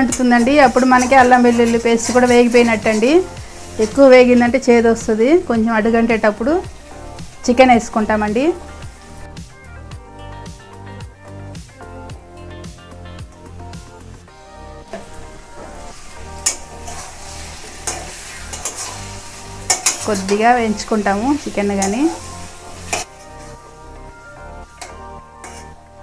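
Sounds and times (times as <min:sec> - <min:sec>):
metal spatula scraping: 0:00.0 - 0:04.6, 0:14.9 - 0:23.8, 0:24.6 - 0:26.0
chicken sizzling in hot oil: 0:00.0 - 0:09.4, 0:14.6 - 0:26.0
metal clicking on iron: 0:16.4 - 0:16.7, 0:17.8 - 0:18.9, 0:19.7 - 0:20.0.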